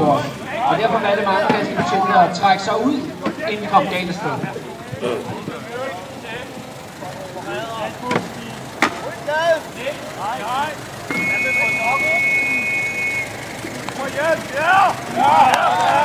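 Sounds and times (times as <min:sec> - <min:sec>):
crowd: 0:00.0 - 0:16.0
men calling and shouting: 0:00.0 - 0:16.0
shrill two-note whistle blast: 0:11.1 - 0:13.4.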